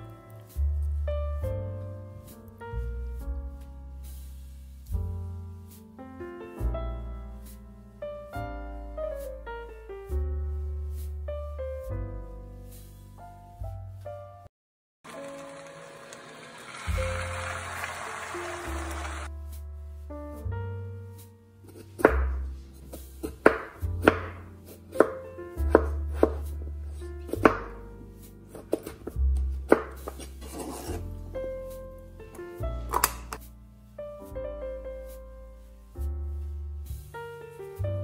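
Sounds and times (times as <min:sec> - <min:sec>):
background piano music: 0:00.0 - 0:14.5, 0:15.1 - 0:38.0
knife slicing potatoes on plastic board: 0:21.6 - 0:31.1.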